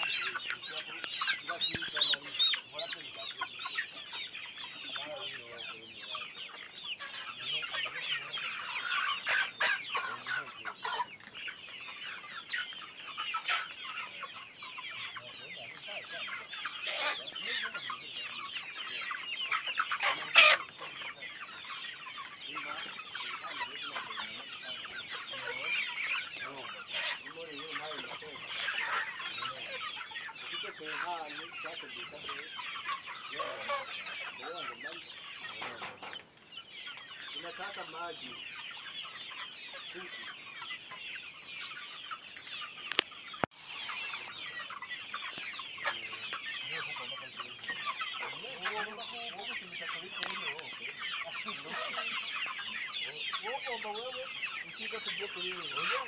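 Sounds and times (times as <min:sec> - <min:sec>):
chickens clucking: 0:00.0 - 0:56.0.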